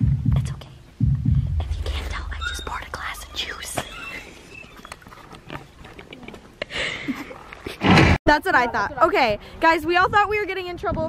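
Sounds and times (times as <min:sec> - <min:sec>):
deep loud sound: 0:00.0 - 0:04.5
people whispering: 0:01.6 - 0:04.8.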